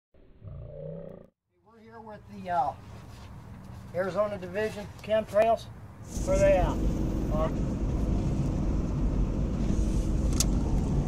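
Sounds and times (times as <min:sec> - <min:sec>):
man talking: 0:01.6 - 0:02.8, 0:03.9 - 0:07.6.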